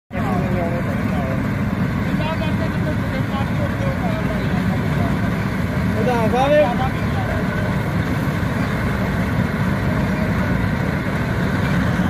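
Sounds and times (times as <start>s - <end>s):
people talking: 0.1s - 10.8s
combine harvester rumbling: 0.1s - 12.0s.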